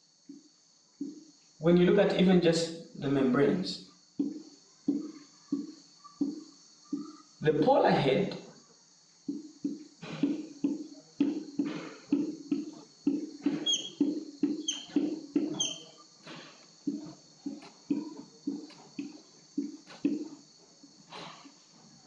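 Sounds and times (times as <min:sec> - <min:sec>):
marker squeaking on whiteboard: 0:04.2 - 0:07.4, 0:09.3 - 0:20.4.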